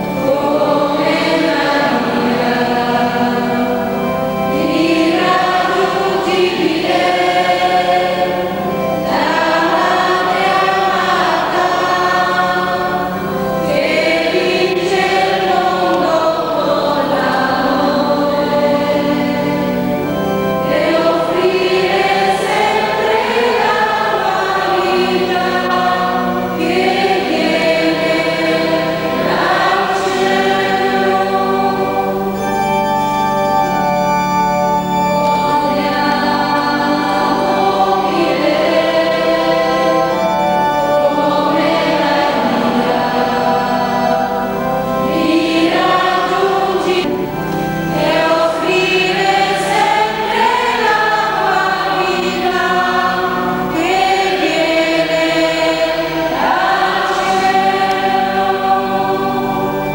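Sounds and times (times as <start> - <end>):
choir singing a hymn: 0.0 - 59.9
organ accompaniment: 0.0 - 59.9.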